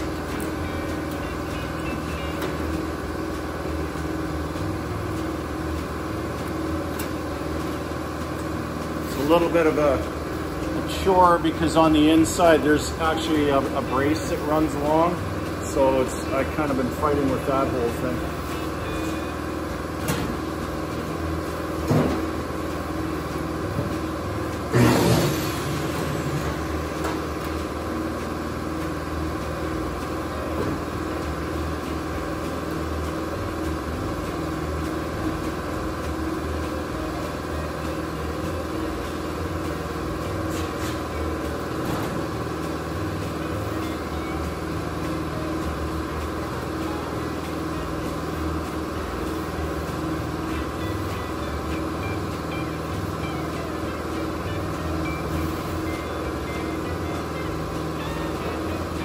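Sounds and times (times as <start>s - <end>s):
mechanical hum of shop: 0.0s - 59.0s.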